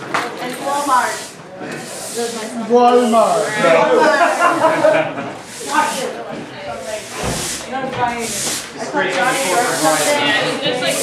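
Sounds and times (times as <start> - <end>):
broom scraping wet floor: 0.0 - 11.0.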